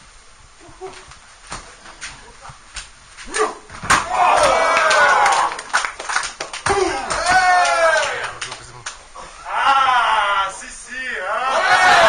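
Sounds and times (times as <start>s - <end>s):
crowd shouting and cheering: 4.0s - 5.9s, 6.6s - 8.4s, 9.3s - 12.0s
thuds on a mat: 6.6s - 7.5s.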